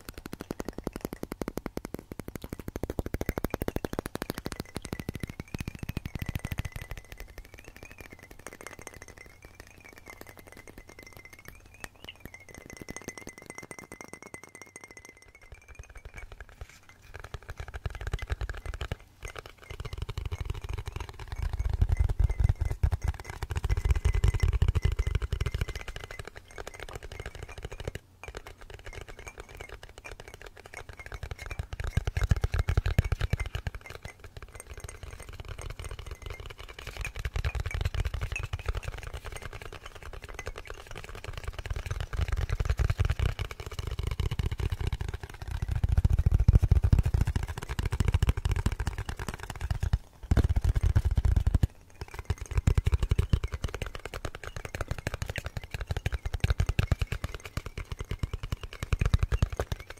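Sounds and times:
fingernails tapping on glass: 0:00.0 - 0:59.9.

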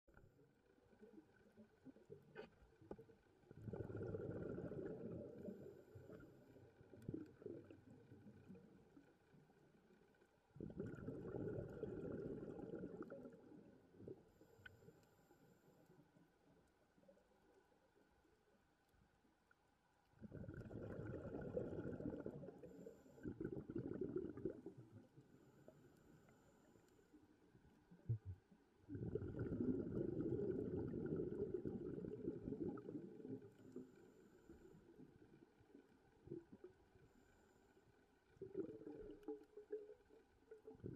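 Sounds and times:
scuba diver exhaling bubbles: 0:03.5 - 0:06.2, 0:10.6 - 0:13.4, 0:20.2 - 0:25.0, 0:28.9 - 0:33.6, 0:38.4 - 0:39.5
faint click: 0:14.6 - 0:16.8.

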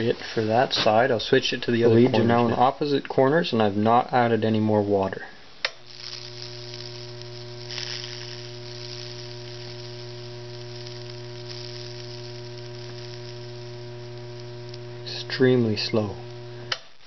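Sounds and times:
electric current sizzling and crackling: 0:00.0 - 0:02.8, 0:05.6 - 0:17.0.

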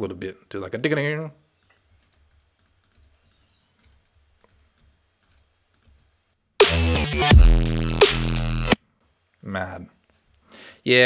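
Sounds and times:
mouse and keyboard clicks: 0:01.6 - 0:06.1.

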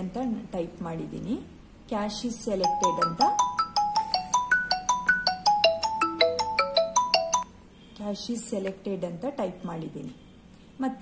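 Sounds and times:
phone ringtone melody: 0:02.6 - 0:07.5.

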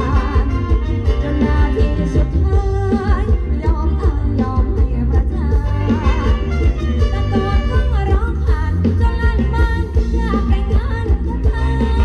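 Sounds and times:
live band dance music: 0:00.0 - 0:12.0
person singing: 0:00.0 - 0:12.0.

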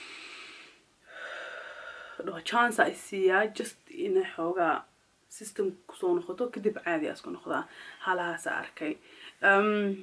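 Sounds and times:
woman inhaling through nose: 0:00.0 - 0:02.2.

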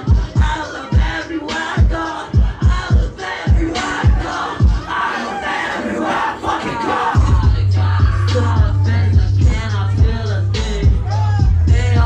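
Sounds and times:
hip hop through club speakers: 0:00.0 - 0:12.0
shouted vocals: 0:00.0 - 0:12.0
deep bass kicks: 0:01.8 - 0:04.9, 0:07.2 - 0:12.0.

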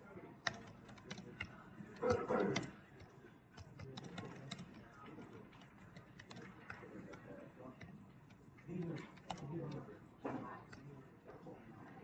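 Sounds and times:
computer keyboard typing: 0:00.4 - 0:10.0.

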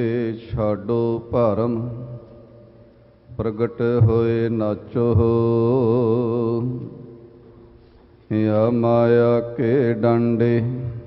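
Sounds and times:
man chanting devotional verse: 0:00.0 - 0:02.7, 0:03.3 - 0:07.3, 0:08.2 - 0:11.0.

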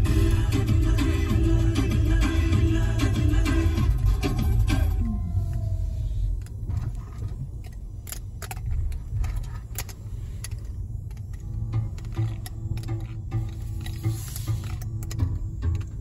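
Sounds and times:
car engine low rumble: 0:00.0 - 0:16.0
light clicks and rattles: 0:06.3 - 0:16.0.

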